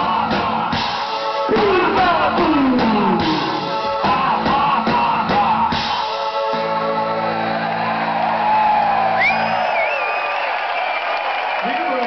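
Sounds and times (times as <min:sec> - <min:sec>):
rock band chord: 0:00.0 - 0:08.3
crowd cheering and whooping: 0:06.5 - 0:12.0
person whistling: 0:09.2 - 0:11.0.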